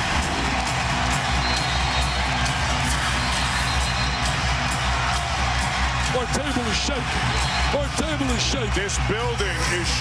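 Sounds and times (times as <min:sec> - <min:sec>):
crowd roaring and cheering: 0:00.0 - 0:10.0
loud music with steady bass: 0:00.0 - 0:10.0.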